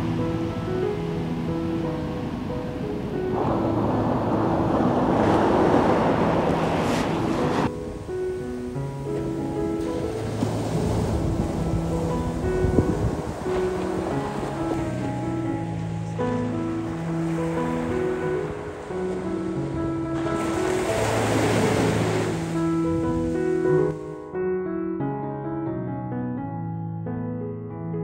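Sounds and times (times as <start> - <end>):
surf washing onto beach: 0.0 - 23.8.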